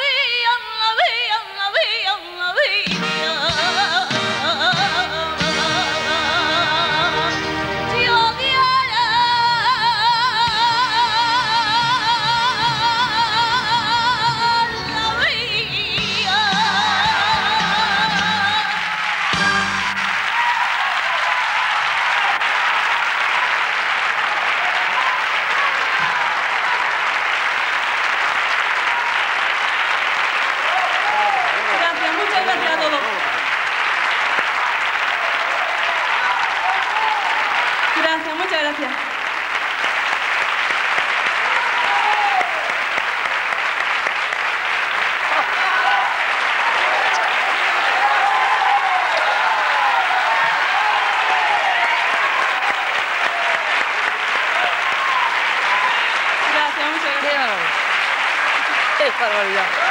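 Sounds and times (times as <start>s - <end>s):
audience applauding: 2.7s - 59.9s.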